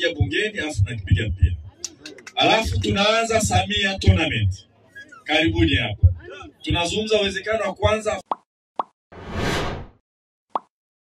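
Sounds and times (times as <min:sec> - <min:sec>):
swish: 0:09.2 - 0:10.0.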